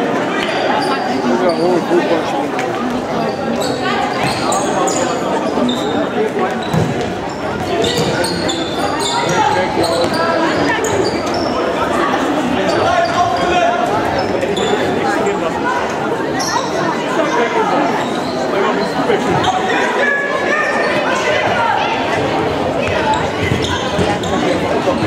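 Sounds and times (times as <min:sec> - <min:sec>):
echoing voices: 0:00.0 - 0:25.0.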